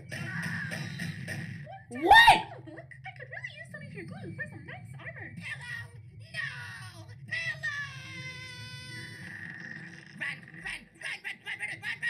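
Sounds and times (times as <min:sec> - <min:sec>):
cartoon character anguished cry: 0:01.9 - 0:02.6.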